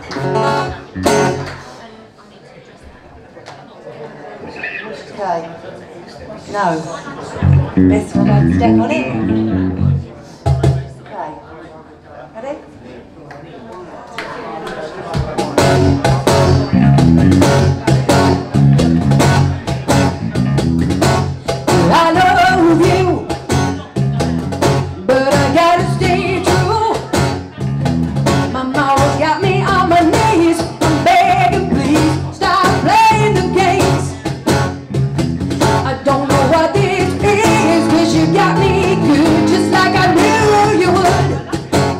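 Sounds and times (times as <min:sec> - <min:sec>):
acoustic guitar: 0:00.0 - 0:01.8, 0:07.4 - 0:10.8, 0:15.4 - 0:41.9
cajon beat: 0:00.1 - 0:01.7, 0:07.4 - 0:10.9, 0:15.2 - 0:41.9
electric bass: 0:00.2 - 0:01.6, 0:07.4 - 0:10.1, 0:15.6 - 0:23.2, 0:24.0 - 0:28.6, 0:31.4 - 0:41.9
woman singing: 0:07.8 - 0:09.6, 0:21.7 - 0:23.2, 0:25.0 - 0:27.0, 0:28.5 - 0:34.2, 0:35.8 - 0:41.4.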